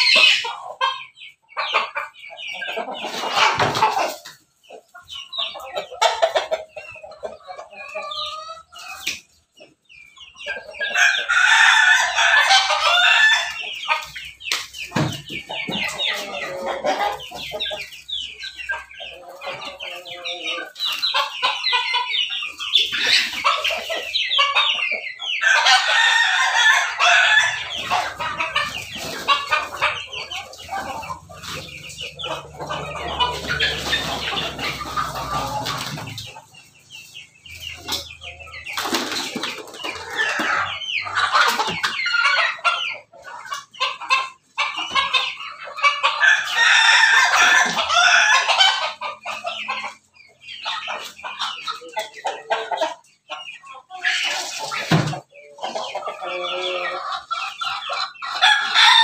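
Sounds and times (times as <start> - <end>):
chickens clucking: 0.0 - 59.0
roosters crowing: 10.8 - 14.2, 23.0 - 36.6, 45.8 - 49.4, 57.9 - 59.0.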